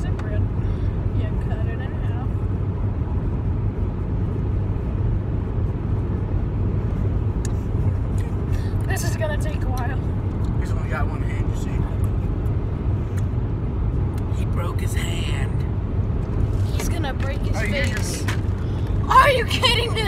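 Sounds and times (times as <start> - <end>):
car engine rumble and road noise: 0.0 - 20.0.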